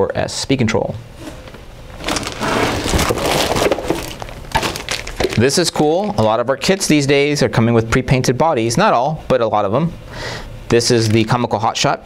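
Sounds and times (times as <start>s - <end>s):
plastic bag crinkling: 1.3s - 7.0s.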